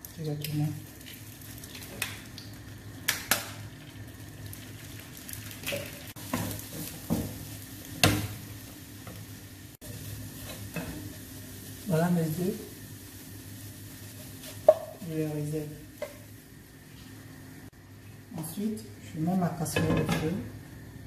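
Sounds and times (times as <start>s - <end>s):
eggs sizzling in a frying pan: 0.0s - 21.0s
spatula tapping and scraping pan: 14.2s - 15.0s.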